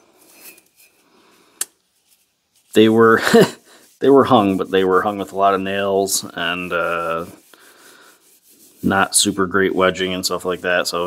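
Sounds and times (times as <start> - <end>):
cloth rubbing metal: 0.0 - 1.1, 1.8 - 11.0.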